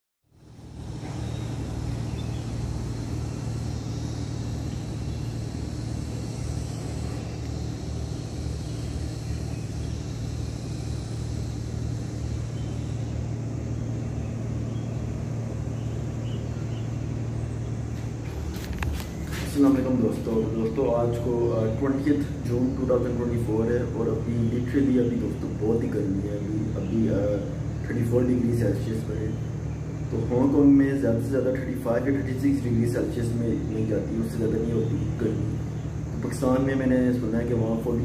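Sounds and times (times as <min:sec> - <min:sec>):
low city rumble: 0:00.3 - 0:38.0.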